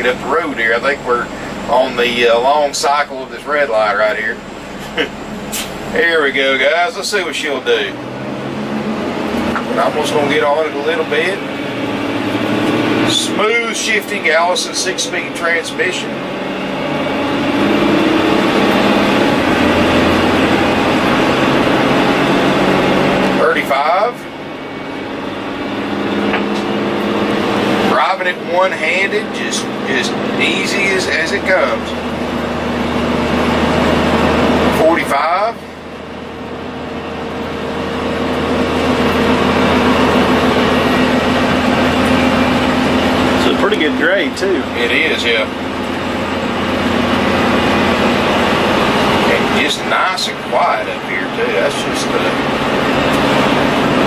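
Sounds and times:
low steady hum: 0.0 - 23.6
diesel engine accelerating: 0.0 - 54.0
road and tyre noise: 0.0 - 54.0.

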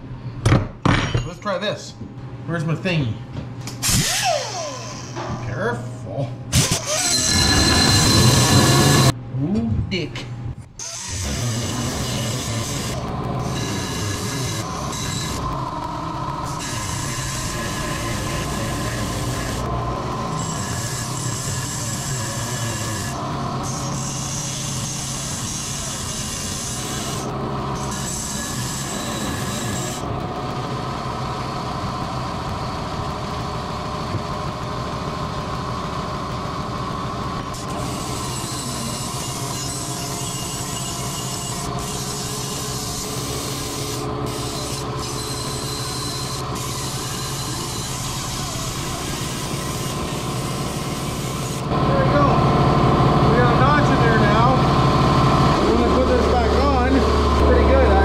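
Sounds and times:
angle grinder cutting steel: 6.6 - 9.2, 10.8 - 30.1, 37.5 - 52.4, 55.5 - 58.0.

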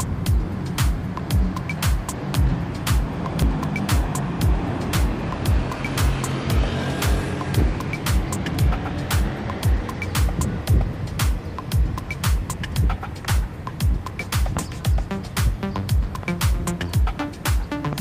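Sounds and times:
hi-hat clicks: 0.0 - 6.4, 7.0 - 18.0
heavy kick drum: 0.0 - 18.0.

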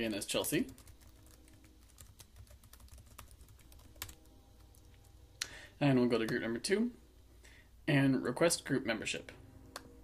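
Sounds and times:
keyboard typing: 0.7 - 5.0.

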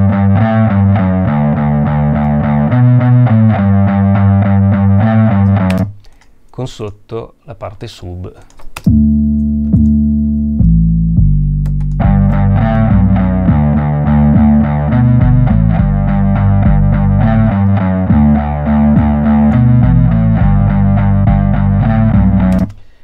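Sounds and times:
distorted electric bass phrase: 0.0 - 5.8, 8.9 - 22.7
low sub-bass line: 0.0 - 5.8, 8.9 - 22.7.

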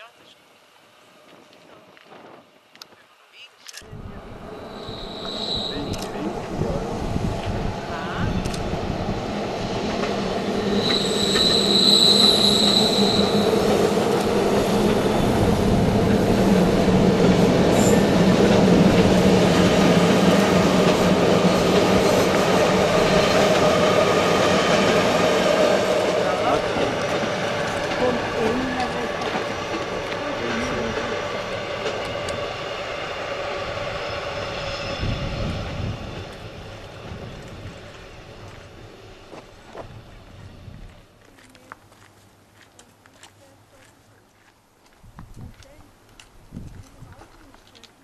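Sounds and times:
electric train passing: 3.8 - 41.2
high wheel squeal: 4.4 - 6.8, 9.8 - 15.5, 32.4 - 36.7.

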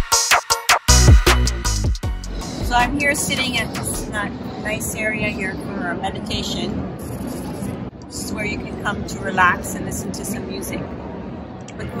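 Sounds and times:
woman speaking: 2.6 - 6.8, 8.1 - 10.9, 11.8 - 12.0.

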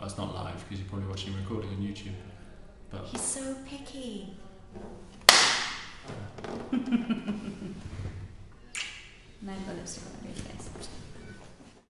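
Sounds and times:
palms slapping together: 5.2 - 6.6.

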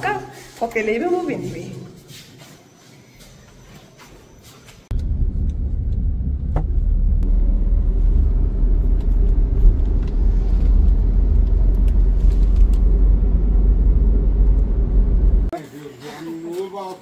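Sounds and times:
car engine and road noise: 4.8 - 15.5.

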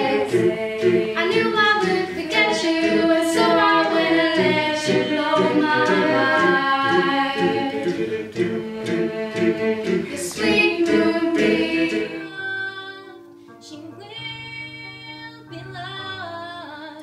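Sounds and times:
group singing a cappella: 0.0 - 12.8.

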